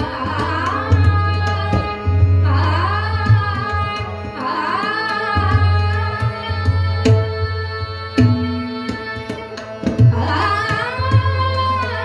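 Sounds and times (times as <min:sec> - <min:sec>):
harmonium tones: 0:00.0 - 0:12.0
tabla strokes: 0:00.0 - 0:12.0
woman singing: 0:00.0 - 0:12.0.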